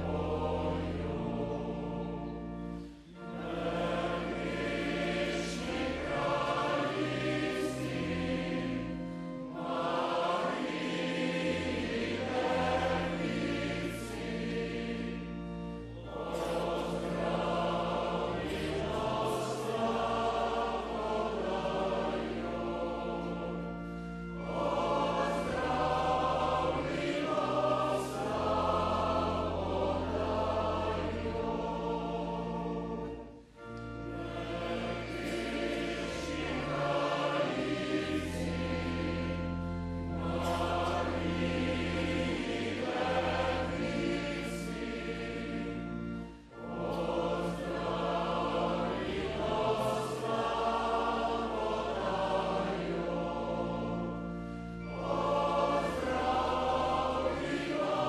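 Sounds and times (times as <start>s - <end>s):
male choir singing: 0.0s - 58.0s.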